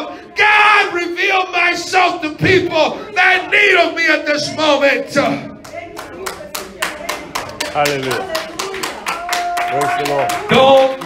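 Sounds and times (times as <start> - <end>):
hands clapping quickly: 5.6 - 11.0.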